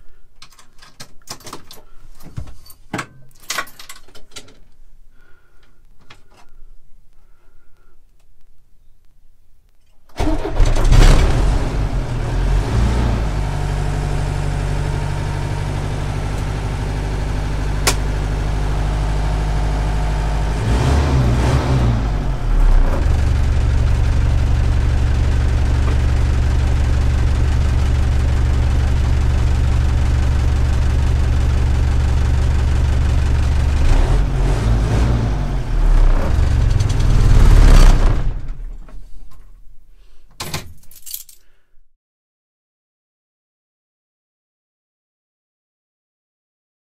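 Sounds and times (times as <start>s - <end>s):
diesel engine cranking and idling: 10.1s - 39.2s.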